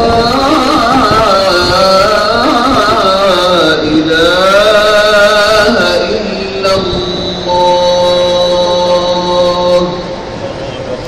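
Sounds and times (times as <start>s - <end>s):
call to prayer over loudspeakers: 0.0s - 11.0s.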